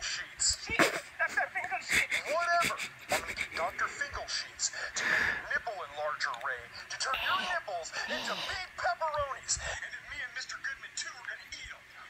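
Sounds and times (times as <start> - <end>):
high-pitched character speech: 7.2 - 8.6.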